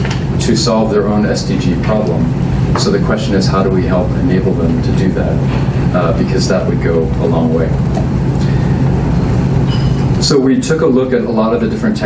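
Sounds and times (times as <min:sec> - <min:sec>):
low rumble with hum: 0:00.0 - 0:12.0.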